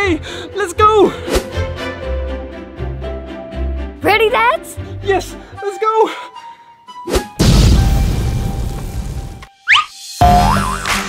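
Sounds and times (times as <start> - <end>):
cartoon rising whistle: 9.6 - 10.6.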